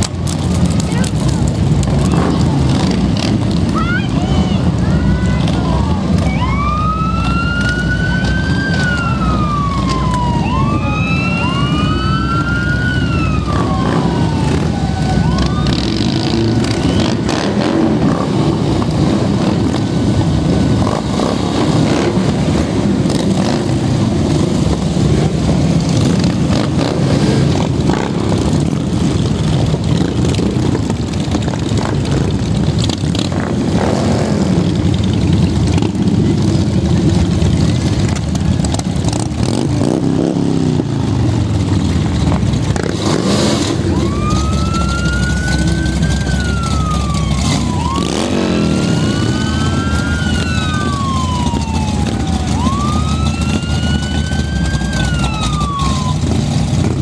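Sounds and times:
motorcycles passing: 0.0s - 57.0s
siren wailing: 6.1s - 17.5s, 43.6s - 56.6s.

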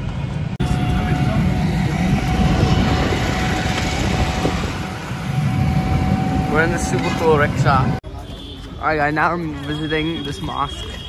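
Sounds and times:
wind noise: 0.0s - 8.0s
auto-rickshaw engine rumbling: 0.0s - 11.0s
road noise: 0.0s - 11.0s.

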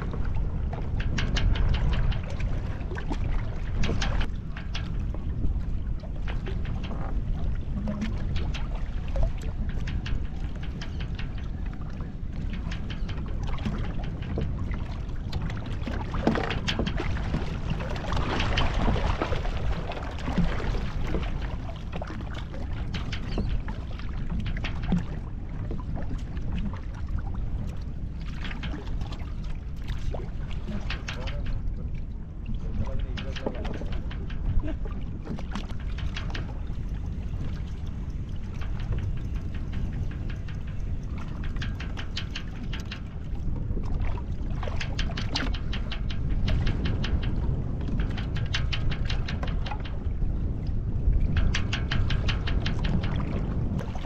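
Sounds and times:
wind and water rumble: 0.0s - 54.0s
rapid clicking and rattling: 32.7s - 43.6s, 44.6s - 50.0s, 51.2s - 54.0s.

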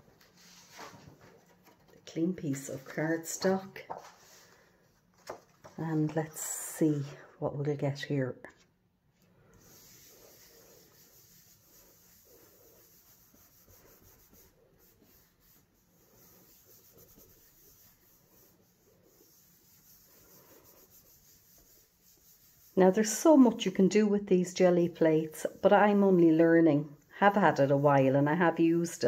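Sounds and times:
hands rubbing paper: 2.4s - 6.4s, 9.6s - 29.0s.

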